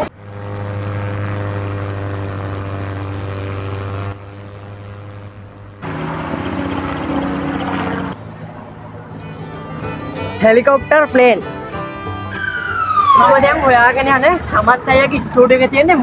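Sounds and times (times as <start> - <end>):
propeller airplane engine drone: 0.0 - 10.8
helicopter rotor beating: 0.0 - 16.0.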